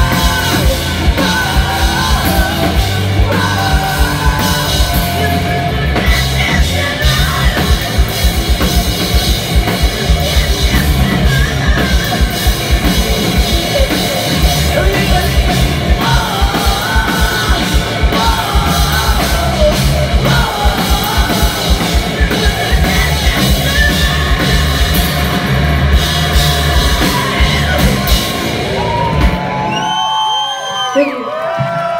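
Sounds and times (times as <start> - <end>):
metalcore band playing: 0.0 - 30.0.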